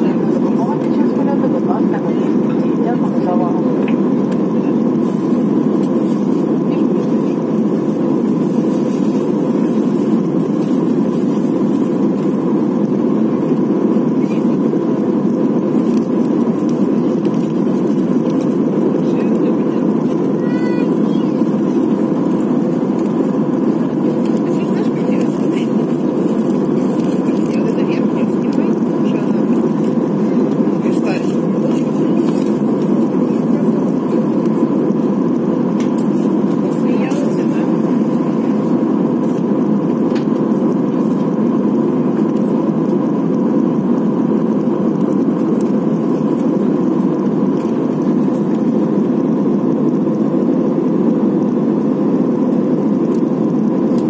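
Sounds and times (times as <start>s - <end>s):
airliner cabin engine rush: 0.0s - 54.0s
steady hum: 0.0s - 54.0s.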